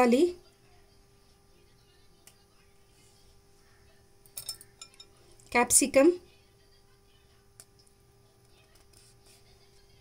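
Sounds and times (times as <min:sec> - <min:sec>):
skewer clinking on glass bowl: 0:04.3 - 0:05.2.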